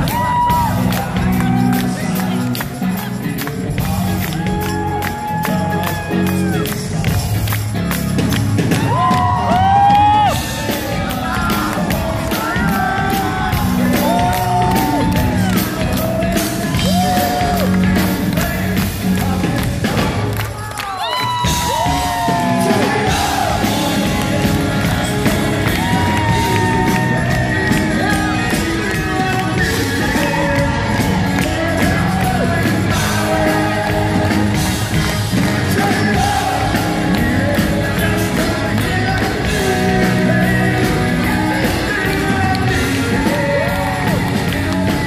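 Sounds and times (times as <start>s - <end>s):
man singing: 0.0s - 7.5s, 8.8s - 45.0s
live rock band: 0.0s - 45.0s.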